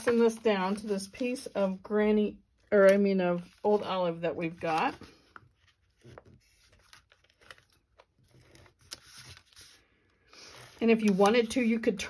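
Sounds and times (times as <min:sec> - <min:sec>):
paper rustling and scraping: 0:00.0 - 0:01.8, 0:02.8 - 0:12.0.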